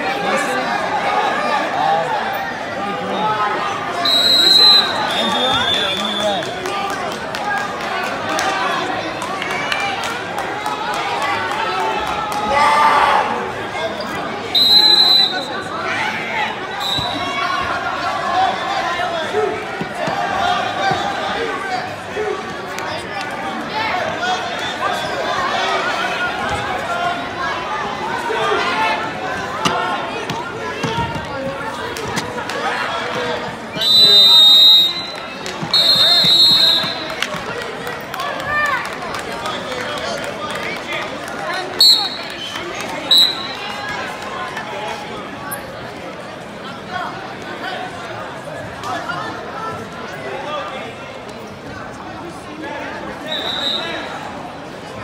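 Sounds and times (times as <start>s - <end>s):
spectators shouting: 0.0s - 7.0s
crowd chatter: 0.0s - 55.0s
shrill whistle blast: 4.0s - 6.3s, 14.6s - 15.6s, 16.8s - 17.2s, 33.8s - 37.1s, 41.8s - 42.5s, 43.1s - 43.6s, 53.3s - 54.0s
loud high-pitched whistle blast: 4.1s - 6.2s, 14.6s - 15.5s.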